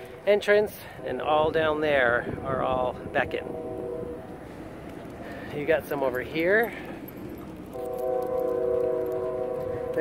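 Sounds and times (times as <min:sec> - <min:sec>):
train horn: 0:03.2 - 0:04.7, 0:07.7 - 0:10.0.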